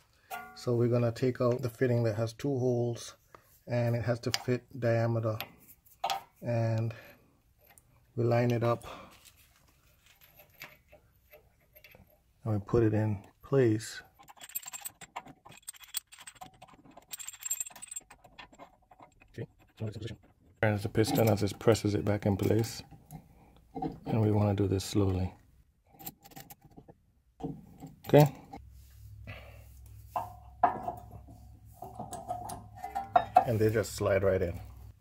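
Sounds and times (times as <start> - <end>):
light metallic clicks and clinks: 30.2 - 33.6.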